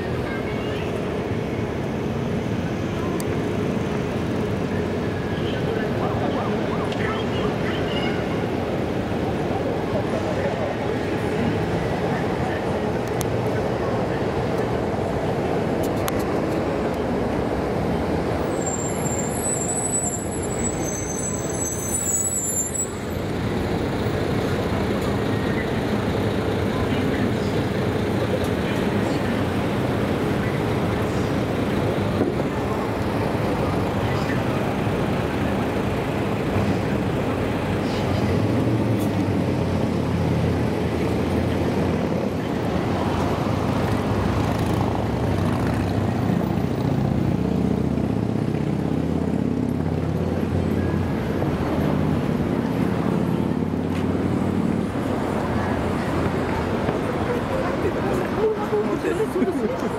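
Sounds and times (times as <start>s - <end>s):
city street traffic: 0.0s - 59.9s.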